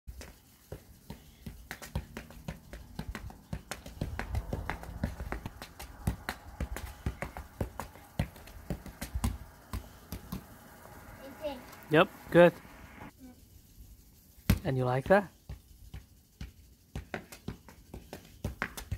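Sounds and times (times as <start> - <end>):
basketball tapped off foot: 0.2 - 10.5, 15.5 - 18.9.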